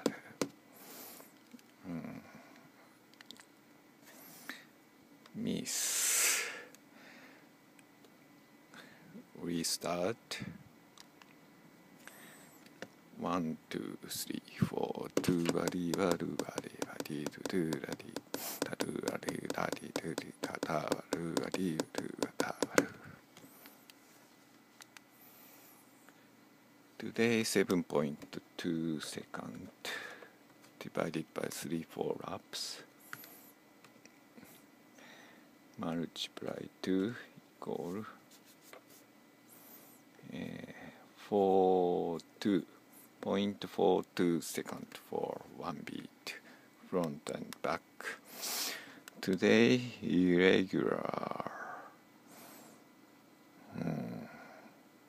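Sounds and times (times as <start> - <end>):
person counting: 0.0 - 0.6, 14.6 - 23.1
person humming: 1.8 - 2.4, 15.2 - 23.2, 53.7 - 54.5
fingertip taps on touchscreen: 15.1 - 23.0.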